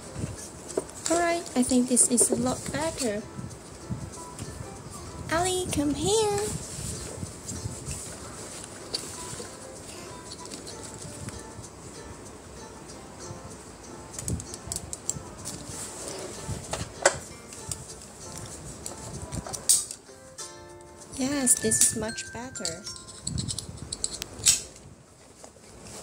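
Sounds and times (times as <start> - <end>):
faint background music: 0.0 - 25.0.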